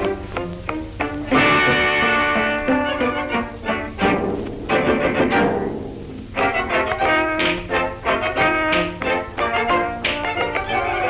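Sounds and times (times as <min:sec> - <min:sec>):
orchestral strings and timpani: 0:00.0 - 0:11.0.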